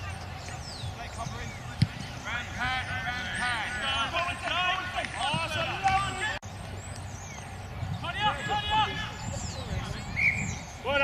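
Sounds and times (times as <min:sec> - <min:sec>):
players shouting: 0:01.8 - 0:06.4, 0:08.0 - 0:09.5.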